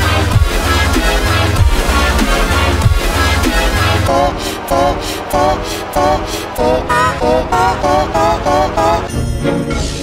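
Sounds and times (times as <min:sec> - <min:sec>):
effects-processed music: 0:00.0 - 0:10.0
low pulsing beat: 0:01.5 - 0:04.4.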